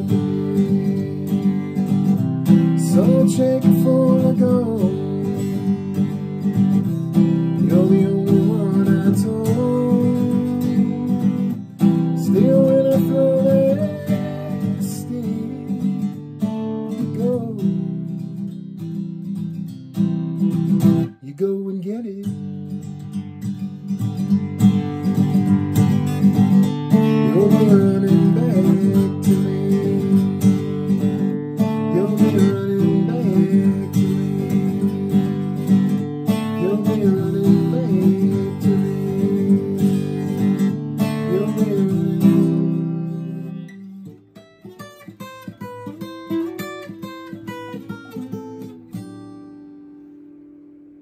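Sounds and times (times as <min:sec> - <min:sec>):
acoustic guitar strumming: 0:00.0 - 0:51.0
picked guitar notes: 0:00.0 - 0:51.0.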